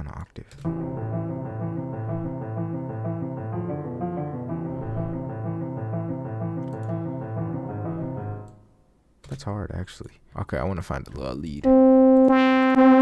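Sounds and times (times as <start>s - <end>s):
pitched-down piano melody: 0.6s - 8.6s, 11.6s - 13.0s
low bass notes: 0.7s - 8.5s.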